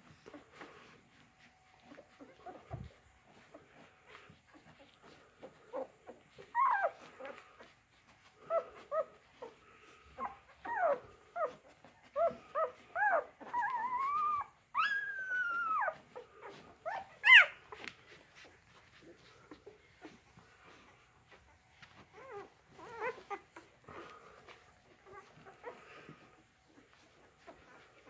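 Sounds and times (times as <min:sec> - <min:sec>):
dog whimpering: 0:00.0 - 0:28.0.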